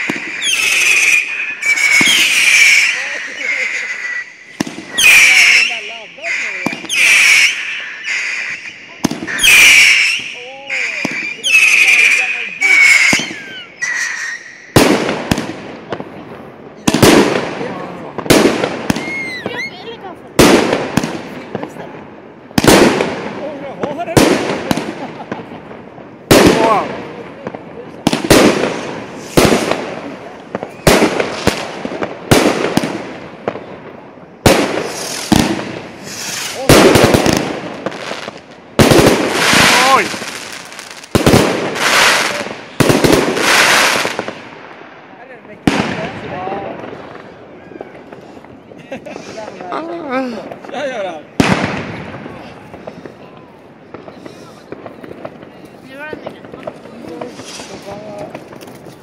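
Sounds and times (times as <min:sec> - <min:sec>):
firework bangs: 0:00.0 - 0:59.0
small firework pops: 0:04.5 - 0:05.1, 0:20.4 - 0:21.9, 0:26.3 - 0:33.7, 0:34.4 - 0:44.8, 0:46.8 - 0:48.6, 0:51.4 - 0:59.0
faint voices: 0:52.0 - 0:59.0.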